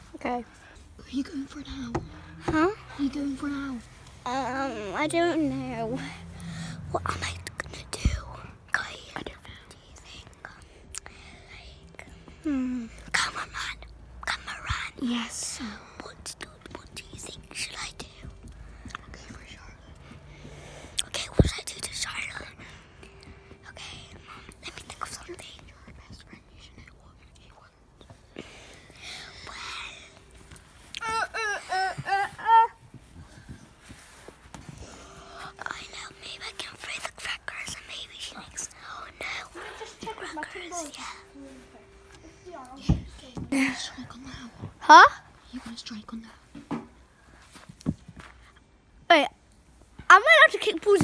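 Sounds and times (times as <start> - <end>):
girl whispering: 4.3 - 18.5, 21.0 - 27.7, 29.0 - 30.2, 34.8 - 46.4.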